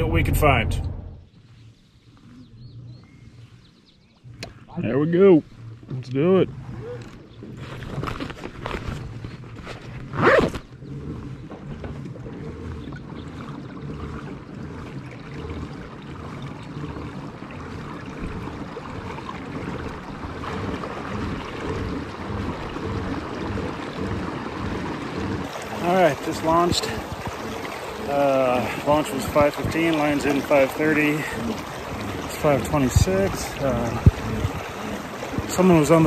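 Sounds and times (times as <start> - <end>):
pedal drive churning water: 0.0 - 36.0.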